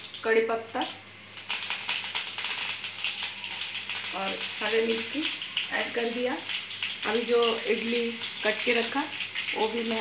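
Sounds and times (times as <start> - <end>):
hot oil sizzling and popping: 0.0 - 10.0.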